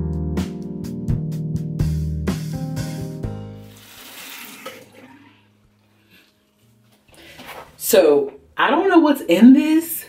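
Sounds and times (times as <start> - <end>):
water running from tap: 3.6 - 5.5.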